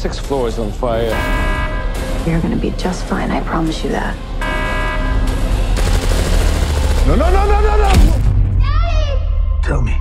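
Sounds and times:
dense rapid crackle: 5.8s - 7.9s.

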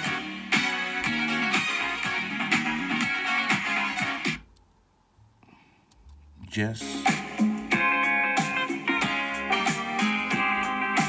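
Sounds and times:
radio music with steady beat: 0.0s - 11.0s.

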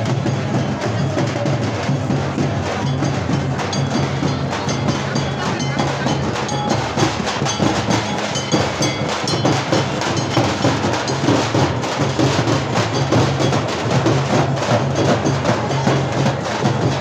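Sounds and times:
frame drums beaten with sticks: 0.0s - 17.0s.

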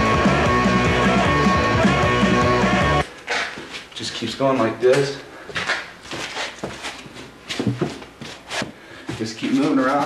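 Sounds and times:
shoes scuffing on hard floor: 3.3s - 3.9s, 5.5s - 10.0s.

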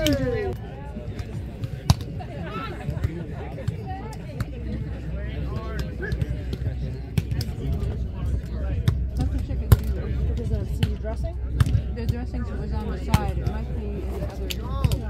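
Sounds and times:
background chatter of people: 0.0s - 15.0s.

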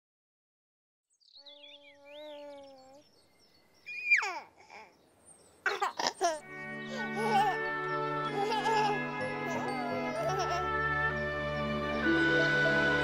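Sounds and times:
faint bird-like chirps: 1.1s - 6.1s
baby babbling and cooing: 1.4s - 3.1s, 3.9s - 5.0s, 5.7s - 7.7s.

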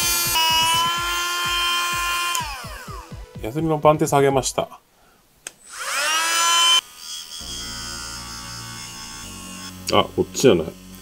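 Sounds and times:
rotary tool motor whine: 0.0s - 3.1s, 5.6s - 11.0s
sanding disc whirring on metal: 0.0s - 3.1s, 5.7s - 11.0s.

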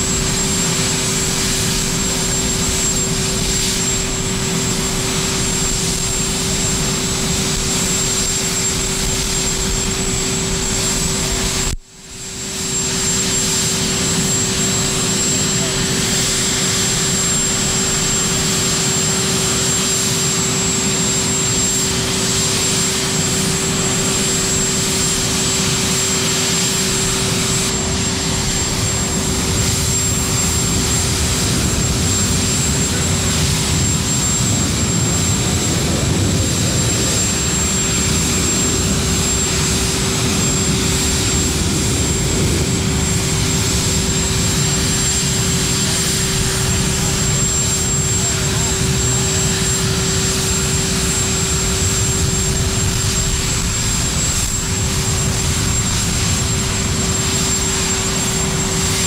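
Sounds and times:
aircraft turbine engines running: 0.0s - 59.0s.

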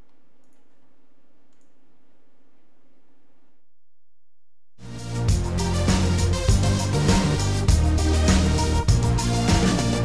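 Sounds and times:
faint keyboard or mouse clicks: 0.0s - 0.9s, 1.5s - 1.8s
low electrical hum: 0.0s - 4.7s.

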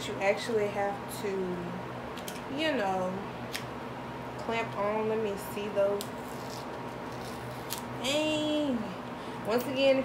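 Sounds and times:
room fan humming: 0.0s - 10.0s.

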